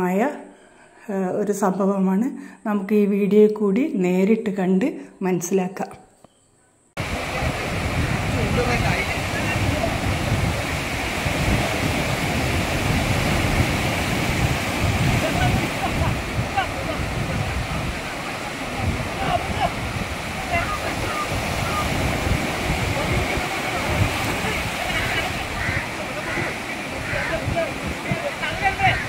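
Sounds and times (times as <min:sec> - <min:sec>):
waves breaking on rocky shore: 0:07.0 - 0:29.0.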